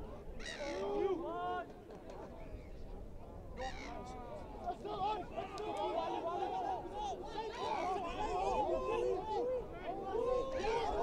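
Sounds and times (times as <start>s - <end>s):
crowd voices: 0.0s - 11.0s.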